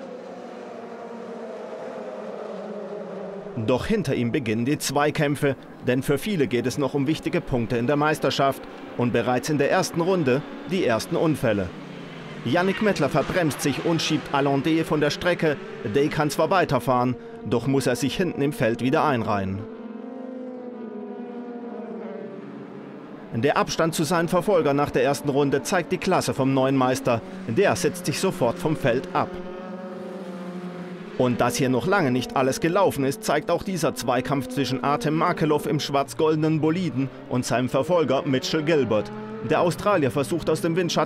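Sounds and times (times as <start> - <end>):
race car engines: 0.0 - 41.0.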